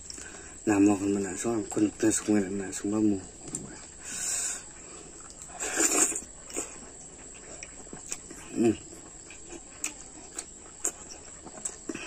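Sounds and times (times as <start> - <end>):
wet chewing and smacking: 0.0 - 1.2, 3.4 - 12.0.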